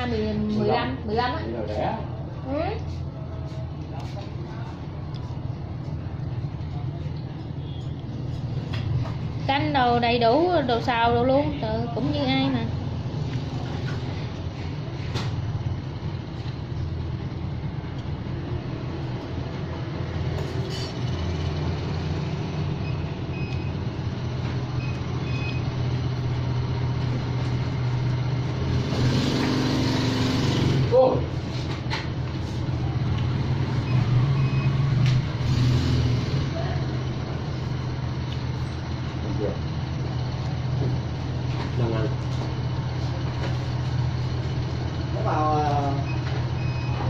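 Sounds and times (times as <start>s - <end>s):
low mechanical hum: 0.0s - 47.0s.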